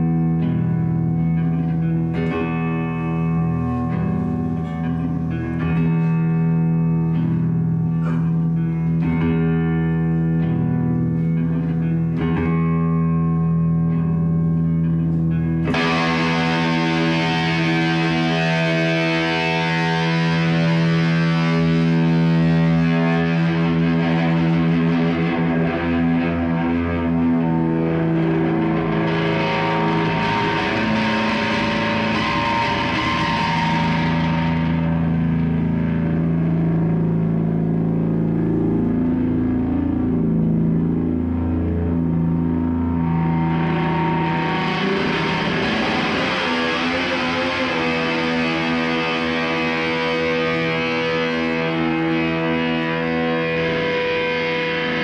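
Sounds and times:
distorted electric guitar drone: 0.0 - 55.0.

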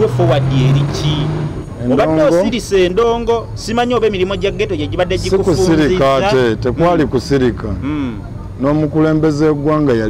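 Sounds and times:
conversational speech: 0.0 - 10.0
vehicle engine passing: 0.0 - 10.0.

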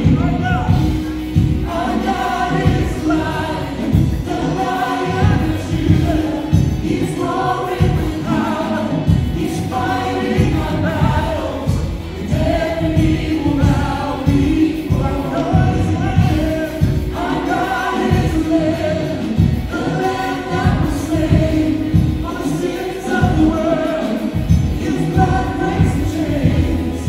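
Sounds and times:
band playing keyboard drums bass: 0.0 - 27.0
man singing lead: 0.0 - 27.0
women singing: 0.0 - 27.0.

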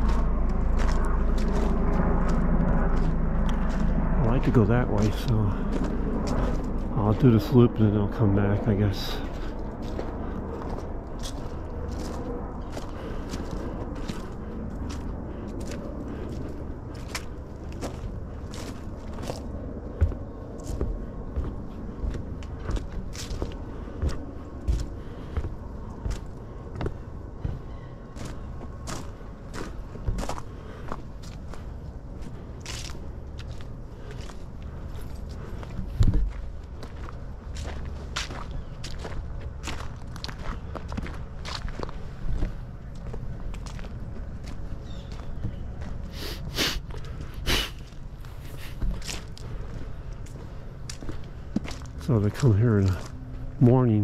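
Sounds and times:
low rumble: 0.0 - 46.1
footsteps on a trail: 0.0 - 54.0.

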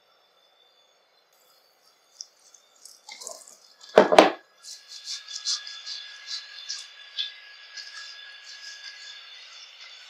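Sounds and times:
faint high whine: 0.0 - 10.0
fingers lathering wet hair: 2.0 - 10.0.

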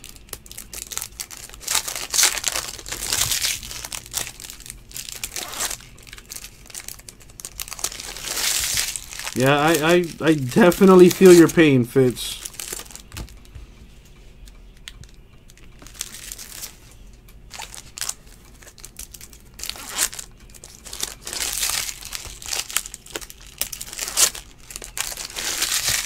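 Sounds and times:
foil wrapper crinkling and tearing: 0.0 - 13.3, 15.5 - 16.9, 17.5 - 26.0
cards rustling: 0.2 - 13.4, 14.9 - 26.0.

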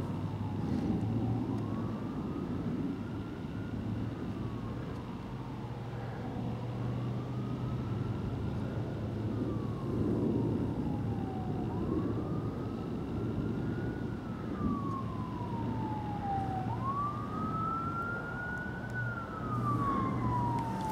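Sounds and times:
siren wailing: 0.2 - 20.9.

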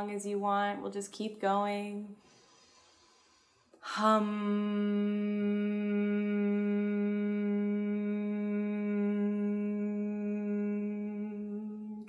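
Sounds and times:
woman humming a long note: 4.0 - 12.0.

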